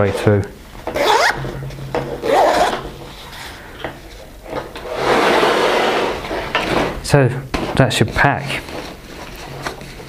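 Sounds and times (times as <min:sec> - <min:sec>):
nylon backpack rustling: 0:01.0 - 0:01.5, 0:02.2 - 0:03.1.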